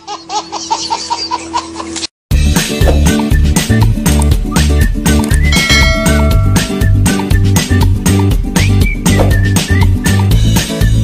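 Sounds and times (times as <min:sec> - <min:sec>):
upbeat music with bouncing bass: 0:02.3 - 0:11.0
high held tone: 0:05.4 - 0:07.7.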